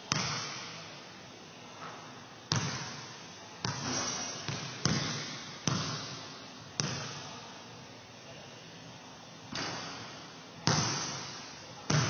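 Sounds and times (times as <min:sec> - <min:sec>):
basketball bouncing on hardwood floor: 0:02.5 - 0:03.0, 0:03.6 - 0:06.2, 0:06.8 - 0:07.1, 0:10.6 - 0:11.3.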